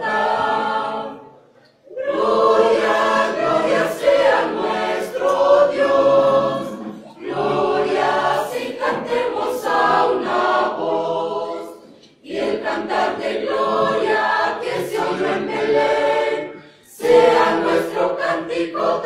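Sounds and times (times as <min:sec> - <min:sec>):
church choir singing a hymn: 0:00.0 - 0:19.0.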